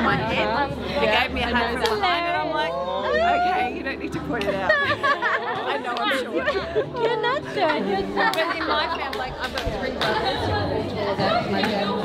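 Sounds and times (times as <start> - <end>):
people chattering in a hall: 0.0 - 12.0.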